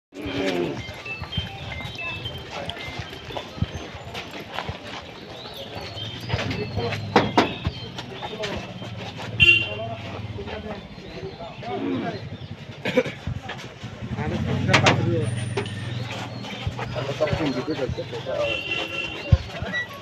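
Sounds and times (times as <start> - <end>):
people talking: 0.2 - 20.0
scattered knocks: 6.2 - 9.0, 12.9 - 18.2.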